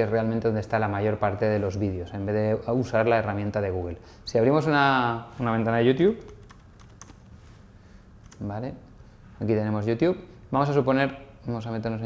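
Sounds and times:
keyboard key clicks: 8.2s - 8.4s.

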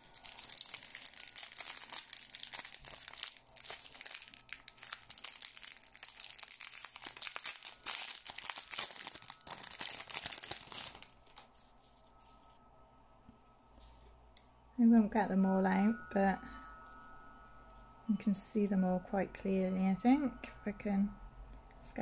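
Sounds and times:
plastic wrapping crinkling: 0.0s - 12.7s.

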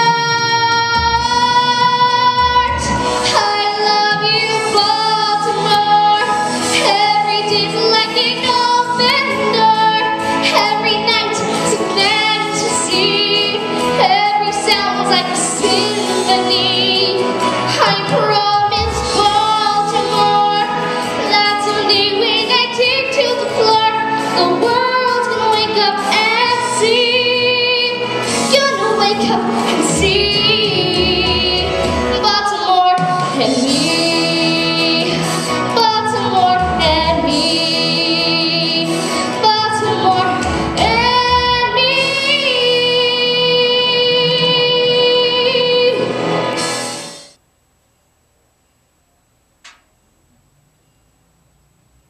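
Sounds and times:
girl singing into a microphone: 0.0s - 46.2s
recorded musical accompaniment: 0.0s - 47.4s.

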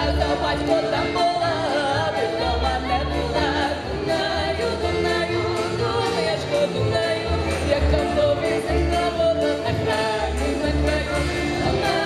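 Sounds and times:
accordion: 0.0s - 12.0s
acoustic guitar: 0.0s - 12.0s
double bass plucking: 0.0s - 12.0s
violin: 0.0s - 12.0s
women singing together: 0.0s - 12.0s.

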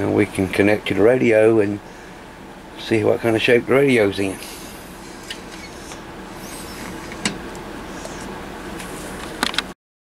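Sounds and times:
steady electrical hum: 0.0s - 9.8s.

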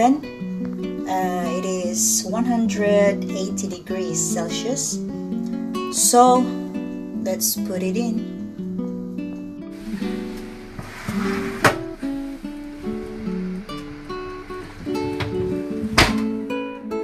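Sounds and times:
acoustic guitar music: 0.0s - 17.0s
sharp knocks: 15.0s - 16.3s.

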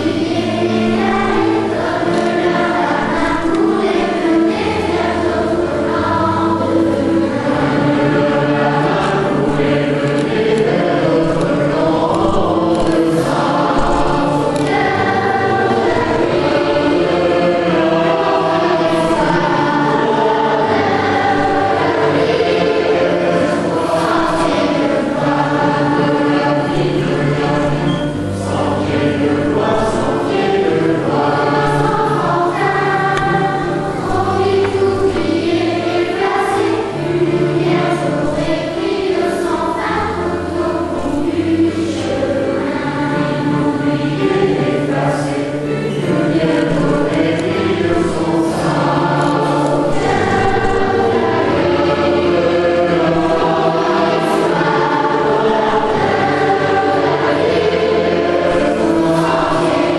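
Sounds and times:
mixed choir singing in unison: 0.0s - 59.9s.

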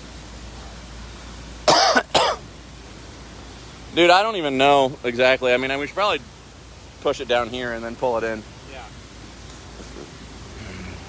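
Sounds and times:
faint background noise: 0.0s - 11.0s
person coughing: 1.7s - 2.4s.

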